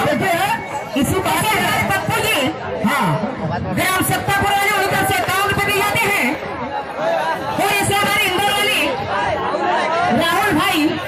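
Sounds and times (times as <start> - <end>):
hubbub of chatter: 0.0 - 11.0
voices through stage microphones: 0.0 - 11.0.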